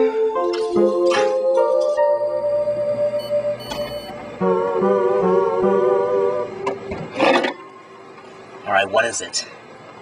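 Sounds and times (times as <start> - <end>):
held musical note wavering: 0.0 - 6.7.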